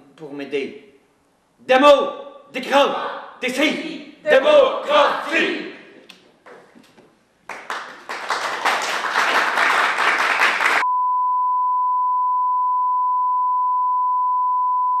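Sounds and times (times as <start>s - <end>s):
people clapping: 6.4s - 10.8s.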